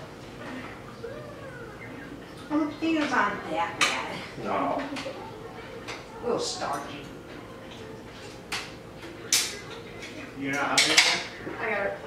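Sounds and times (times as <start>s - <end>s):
low voices: 0.0s - 12.0s
cutlery and dishes clinking: 5.8s - 11.7s.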